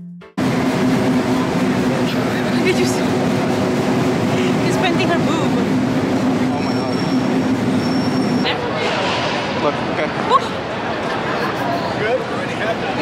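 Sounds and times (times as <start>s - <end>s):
high whine: 0.4s - 9.9s
subway train rumble: 0.4s - 13.0s.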